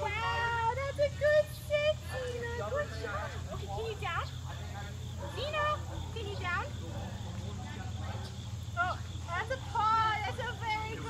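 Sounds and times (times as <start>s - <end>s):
low outdoor background rumble: 0.0s - 11.0s.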